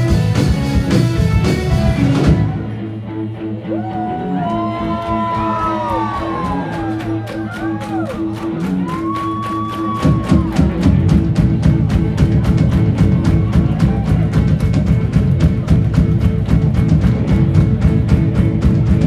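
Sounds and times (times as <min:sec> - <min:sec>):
live rock band playing: 0:00.0 - 0:19.0
fast steady drum beat: 0:09.6 - 0:19.0.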